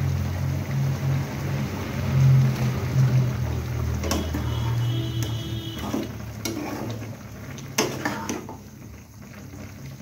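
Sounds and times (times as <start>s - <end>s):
gas burner rumbling: 0.0s - 10.0s
sauce simmering: 0.0s - 10.0s.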